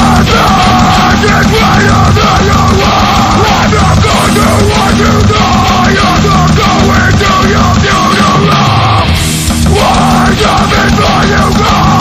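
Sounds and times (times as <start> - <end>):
harsh yelled vocals: 0.0 - 12.0
heavy metal band playing: 0.0 - 12.0.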